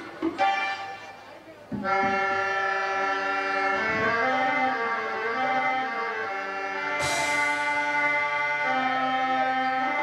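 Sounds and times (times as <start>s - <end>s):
harmonium held reedy notes: 0.3s - 10.0s.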